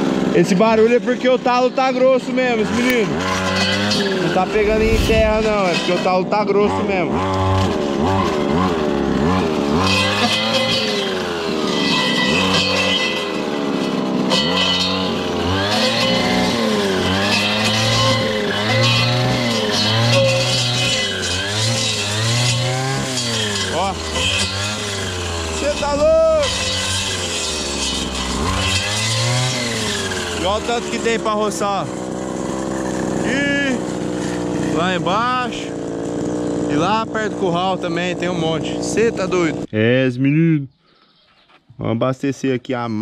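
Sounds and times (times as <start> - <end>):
brushcutter engine cutting brush: 0.0 - 39.7.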